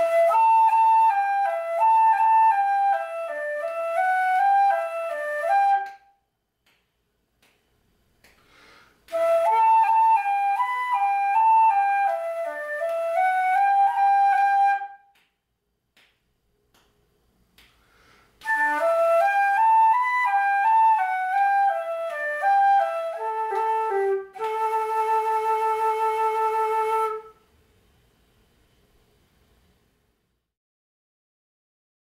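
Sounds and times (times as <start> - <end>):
flute playing reel melody: 0.0 - 6.2, 9.1 - 15.1, 18.4 - 27.4.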